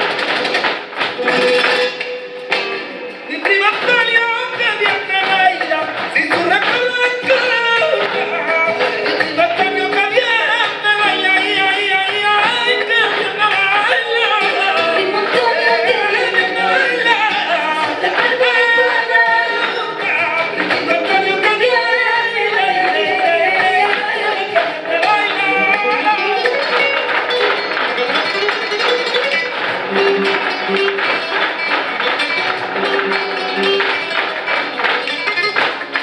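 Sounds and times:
instrumental accompaniment: 0.0s - 36.0s
sharp rhythmic strikes: 0.0s - 36.0s.

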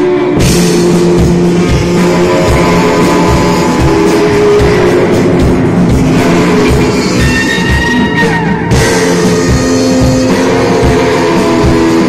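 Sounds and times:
bass guitar: 0.0s - 12.0s
electric guitar: 0.0s - 12.0s
steady drum beat: 0.0s - 12.0s.

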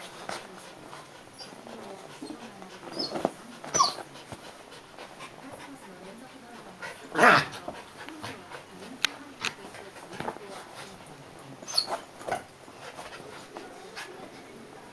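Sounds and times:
dogs growling: 0.5s - 14.3s
dog whining: 3.0s - 4.0s, 11.6s - 12.0s.

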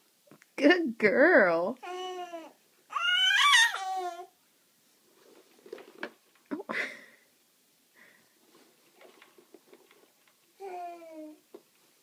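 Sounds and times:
baby squealing: 1.8s - 4.3s
baby cooing: 1.8s - 4.4s, 10.6s - 11.4s.

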